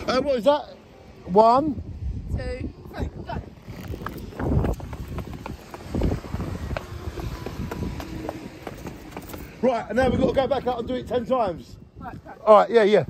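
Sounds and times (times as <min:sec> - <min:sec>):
wind rumbling on microphone: 0:00.0 - 0:13.0
running footsteps on concrete: 0:03.9 - 0:09.8.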